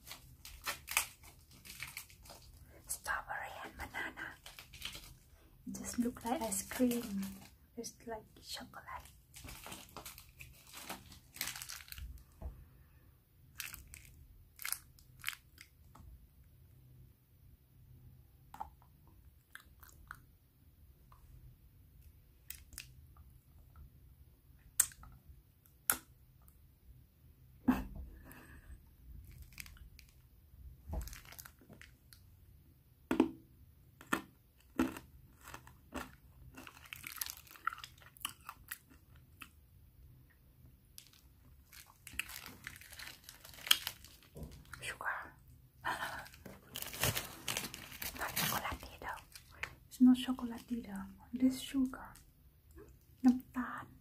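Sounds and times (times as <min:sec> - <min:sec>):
woman whispering: 0:02.7 - 0:04.5, 0:05.7 - 0:09.2, 0:44.8 - 0:46.3, 0:48.1 - 0:52.2, 0:53.2 - 0:54.0
biting frozen ice cream crunching: 0:34.0 - 0:39.5.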